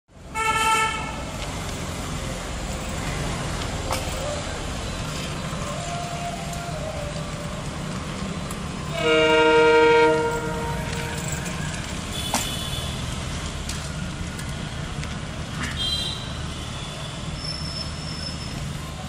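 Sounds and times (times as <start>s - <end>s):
diesel locomotives chugging: 0.4s - 12.4s
train horn blasts: 8.9s - 11.2s.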